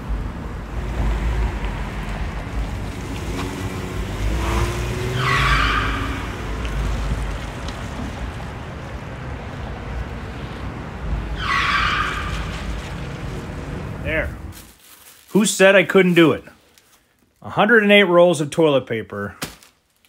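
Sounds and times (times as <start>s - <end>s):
van engine revving: 0.0s - 14.5s
tyres squealing: 3.3s - 8.2s, 11.0s - 14.6s.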